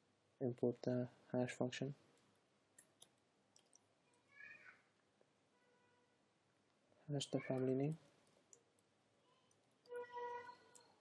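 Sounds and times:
faint high-pitched cry: 4.1s - 4.9s, 5.5s - 6.2s, 9.2s - 11.0s.

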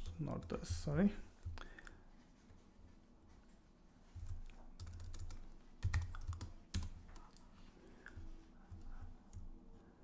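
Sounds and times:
typing on computer keyboard: 4.8s - 7.4s.

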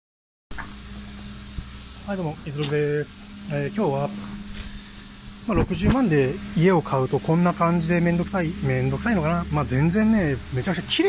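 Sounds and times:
steady low hum: 0.5s - 11.0s.

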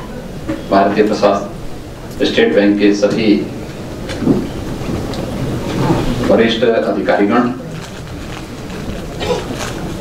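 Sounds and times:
rumbling hissing hall noise: 0.0s - 10.0s.

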